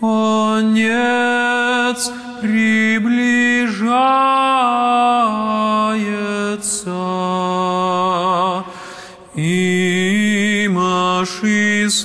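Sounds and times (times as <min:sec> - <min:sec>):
man singing chant: 0:00.0 - 0:12.0.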